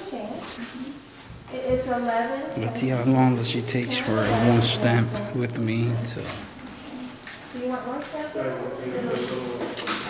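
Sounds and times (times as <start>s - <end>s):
man speaking: 2.6s - 6.5s.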